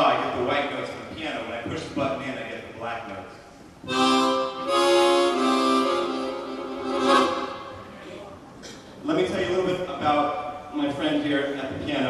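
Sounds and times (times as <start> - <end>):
harmonica playing notes and chords: 3.8 - 8.0.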